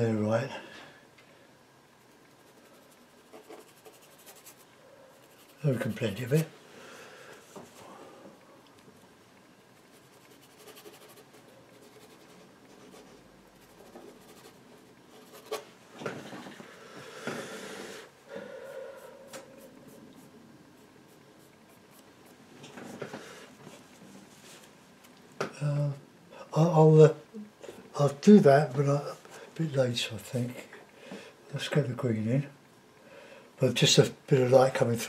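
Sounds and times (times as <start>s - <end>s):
paintbrush strokes on panel: 2.0s - 6.5s, 9.8s - 15.6s, 18.8s - 22.4s.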